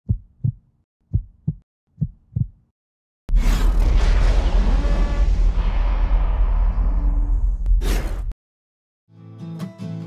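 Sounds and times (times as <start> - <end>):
heartbeat thumps: 0.0 - 2.7.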